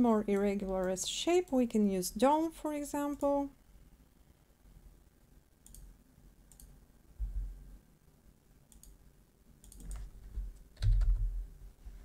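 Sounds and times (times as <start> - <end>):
computer mouse buttons clicking: 5.6 - 5.9, 6.5 - 6.8, 8.7 - 9.0, 9.6 - 10.1.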